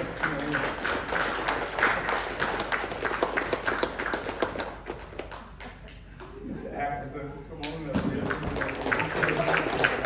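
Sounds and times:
people clapping: 0.0 - 6.5, 7.6 - 10.0.

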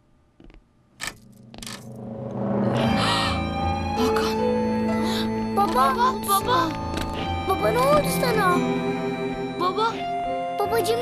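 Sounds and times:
background music: 1.3 - 11.0.

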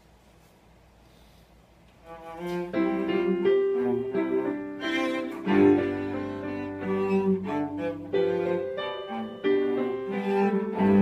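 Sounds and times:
bowed cello notes: 2.0 - 11.0
piano accompaniment: 2.1 - 11.0.

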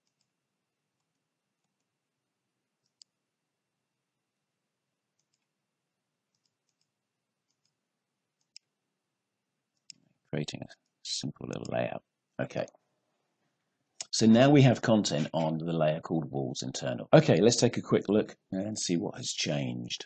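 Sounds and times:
computer mouse clicks: 2.8 - 3.2, 5.2 - 5.5, 6.3 - 6.9, 7.5 - 7.8, 8.4 - 8.7.

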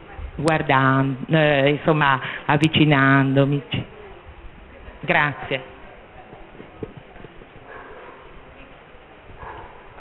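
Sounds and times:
faint murmuring voices: 3.6 - 10.0
microphone handling knocks: 6.3 - 7.7.

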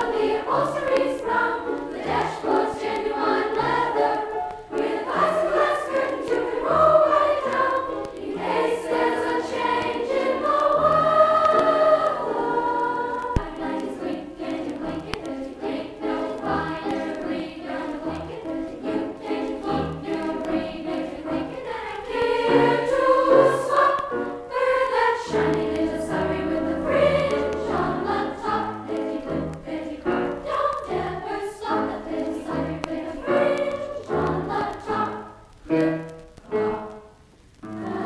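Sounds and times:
choir singing on vinyl record: 0.0 - 38.0.

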